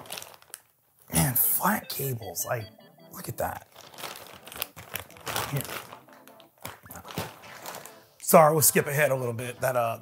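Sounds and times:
plastic bag crinkling: 0:00.0 - 0:01.1, 0:03.2 - 0:08.8.

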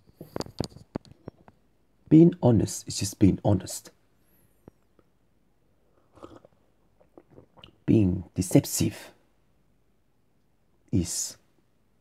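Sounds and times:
person swallowing a drink: 0:06.0 - 0:07.8.

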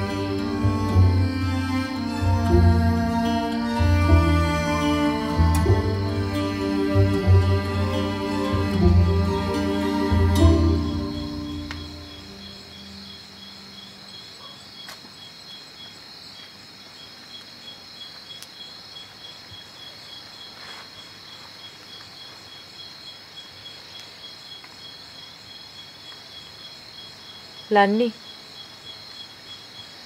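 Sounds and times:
crickets chirping: 0:00.0 - 0:30.0
faint soft ticks: 0:11.6 - 0:11.9.

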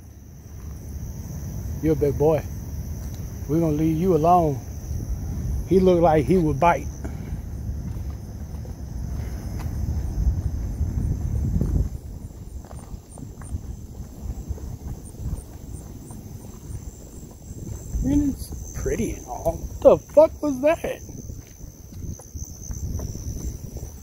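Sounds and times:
crickets trilling: 0:00.0 - 0:24.0
pulsing insect chirp: 0:00.0 - 0:24.0
man speaking: 0:01.8 - 0:02.5, 0:03.5 - 0:04.6, 0:05.6 - 0:07.1, 0:18.0 - 0:21.1
low rumble: 0:04.6 - 0:20.4.

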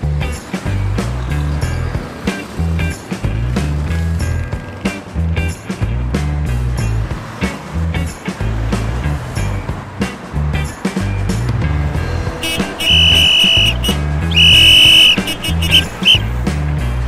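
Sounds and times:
background music with bass beat: 0:00.0 - 0:17.0
shrill whistle blasts: 0:12.4 - 0:16.3.

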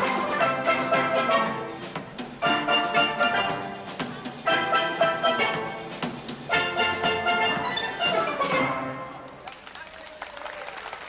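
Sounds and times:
steel band playing chords: 0:00.0 - 0:09.4.

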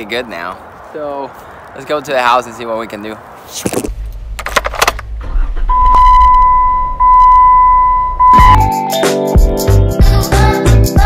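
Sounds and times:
low rumble: 0:03.9 - 0:08.6
steady electronic beep tone: 0:05.6 - 0:09.0
music with a beat: 0:08.3 - 0:11.0.

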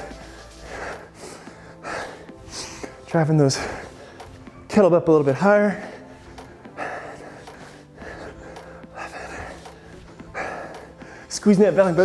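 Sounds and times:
man's forceful breath out: 0:00.0 - 0:04.7, 0:05.8 - 0:11.3
quiet breathing: 0:00.0 - 0:04.7, 0:05.6 - 0:12.0.

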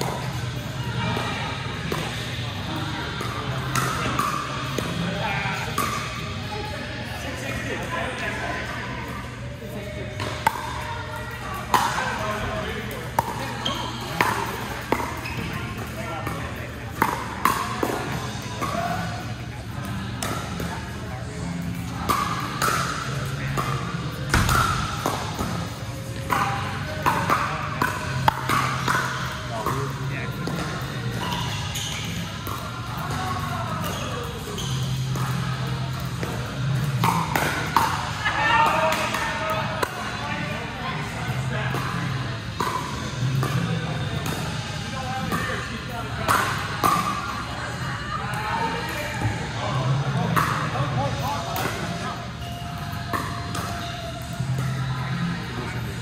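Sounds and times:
voices: 0:00.0 - 0:56.0
ball bouncing: 0:03.2 - 0:05.1, 0:05.7 - 0:06.2, 0:10.2 - 0:10.8, 0:12.9 - 0:19.2, 0:21.7 - 0:40.1, 0:41.7 - 0:44.6, 0:50.2 - 0:54.8
paddles hitting plastic ball: 0:35.0 - 0:38.1.

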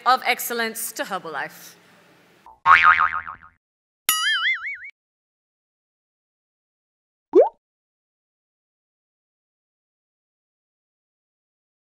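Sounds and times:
cartoon boing: 0:02.5 - 0:04.9.

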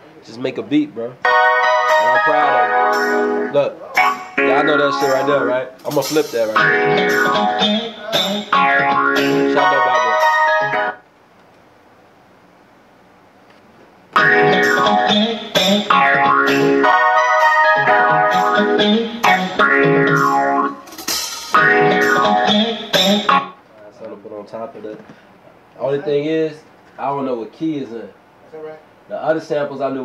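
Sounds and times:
melodic sample through speakers: 0:01.2 - 0:05.8, 0:06.4 - 0:11.0, 0:14.2 - 0:20.8, 0:21.5 - 0:23.6.

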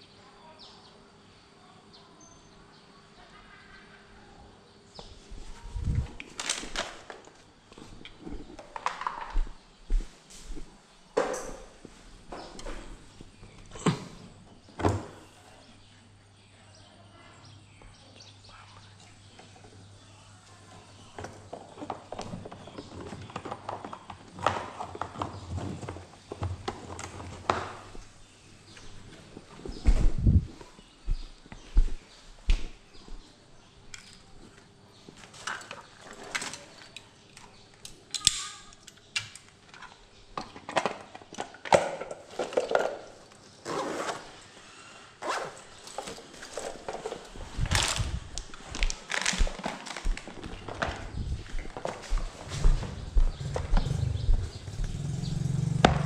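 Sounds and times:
footsteps on hard floor: 0:09.3 - 0:10.7, 0:29.5 - 0:33.2, 0:47.3 - 0:55.0
handling cables and gear: 0:45.2 - 0:52.1.

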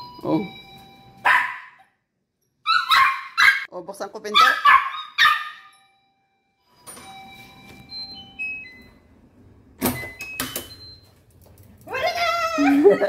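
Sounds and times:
small dog barking: 0:01.2 - 0:01.8, 0:02.7 - 0:03.7, 0:04.4 - 0:05.6.

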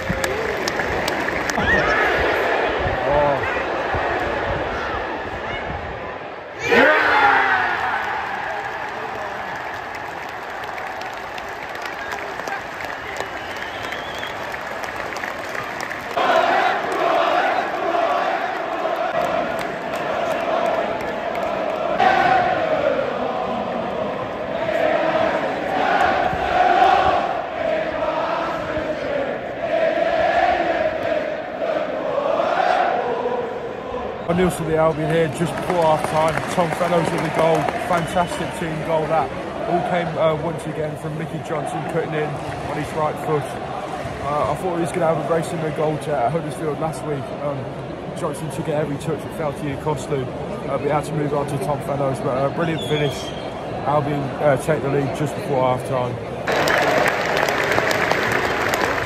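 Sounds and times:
stadium crowd roaring: 0:00.0 - 0:59.0
fans singing a chant: 0:16.1 - 0:34.7.

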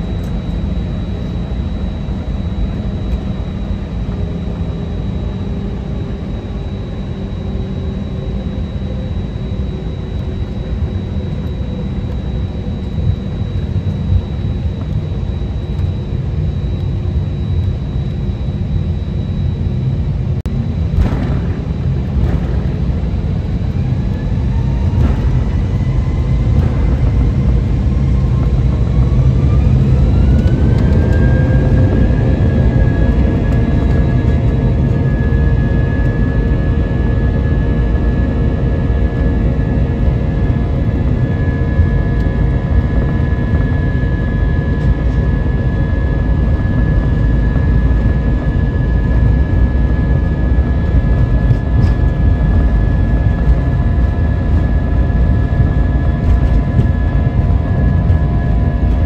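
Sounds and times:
aircraft cabin rumble: 0:00.0 - 0:59.0
jet engine whine: 0:00.0 - 0:59.0.

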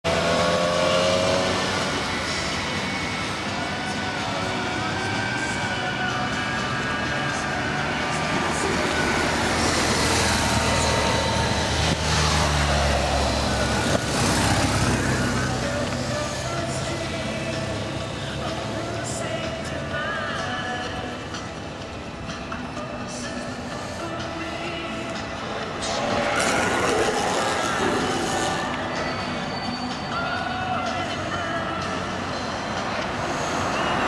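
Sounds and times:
vehicle passing close by: 0:00.0 - 0:18.8, 0:24.6 - 0:29.5
background voices: 0:00.0 - 0:34.0
road traffic noise: 0:00.0 - 0:34.0.

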